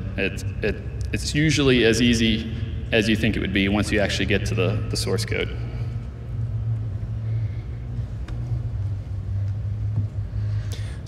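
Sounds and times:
hall background rumble and hum: 0:00.0 - 0:11.0.

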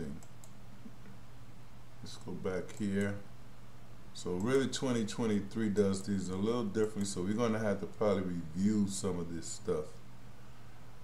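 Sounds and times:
steady low hum: 0:00.0 - 0:11.0
computer mouse clicks: 0:00.1 - 0:01.2.

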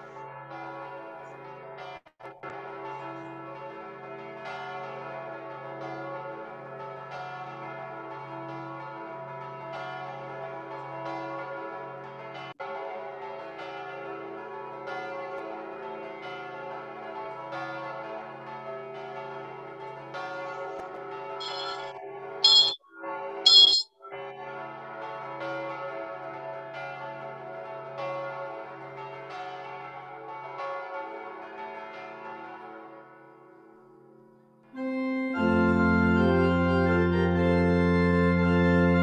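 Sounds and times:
church bells pealing: 0:00.2 - 0:01.8, 0:02.5 - 0:12.5, 0:13.6 - 0:16.8, 0:17.4 - 0:18.5, 0:19.1 - 0:20.5.

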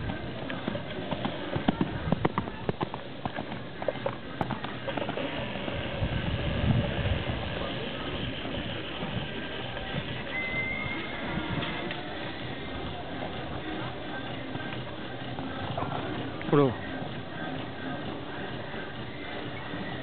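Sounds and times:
horse hoofbeats on sand: 0:00.0 - 0:06.0.

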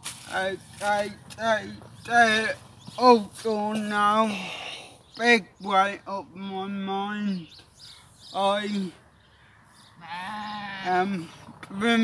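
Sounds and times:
sheep bleating: 0:10.0 - 0:11.3.

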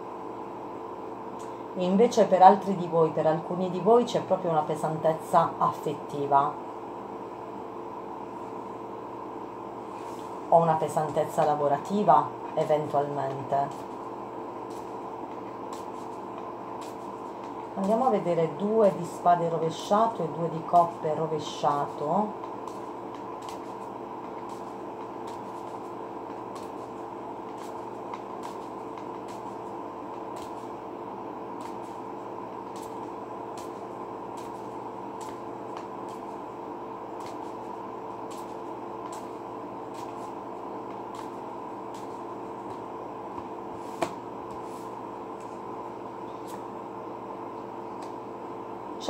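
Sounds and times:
fan humming: 0:00.0 - 0:49.0
playing cards ticking: 0:22.4 - 0:30.8, 0:31.6 - 0:36.5, 0:37.1 - 0:44.1.

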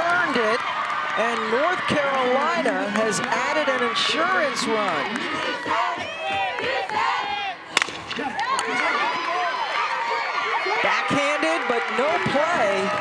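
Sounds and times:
crowd cheering and shouting: 0:00.0 - 0:13.0
sharp crack: 0:07.7 - 0:08.7.

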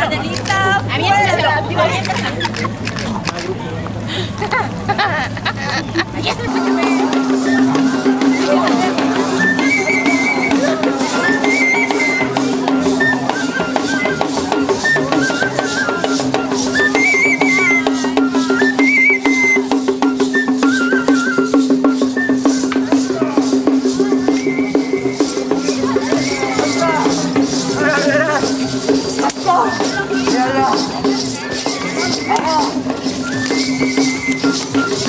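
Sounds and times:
high piping melody: 0:05.9 - 0:35.0.

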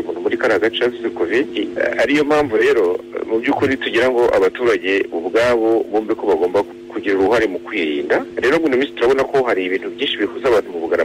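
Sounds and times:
person talking in news report: 0:00.0 - 0:11.0.

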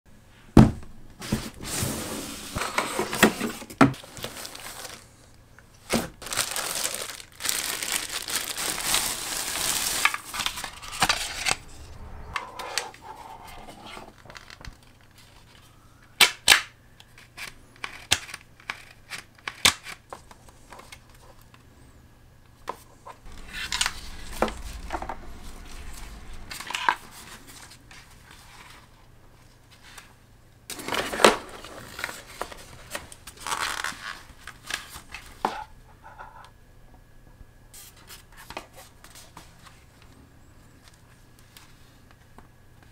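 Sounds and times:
soft scrape: 0:10.3 - 0:14.2, 0:23.0 - 0:28.8.

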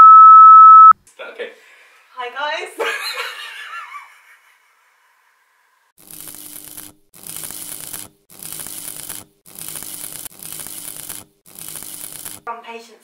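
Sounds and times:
static-like hissing: 0:06.1 - 0:12.4.

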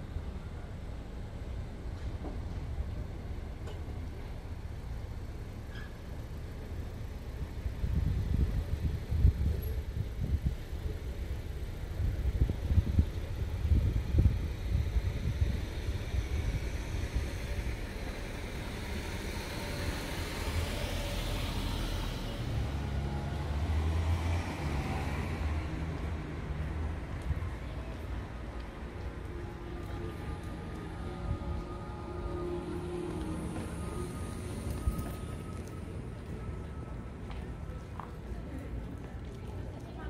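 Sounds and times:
low vehicle rumble: 0:00.0 - 0:40.0
steady engine hum: 0:00.0 - 0:40.0
car passing: 0:13.7 - 0:39.0.

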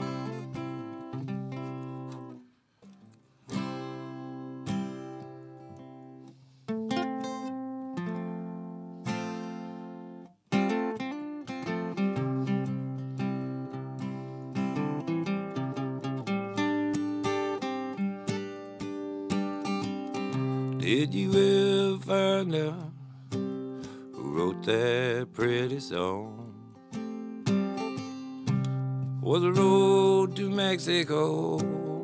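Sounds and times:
acoustic guitar strumming: 0:00.0 - 0:32.0.

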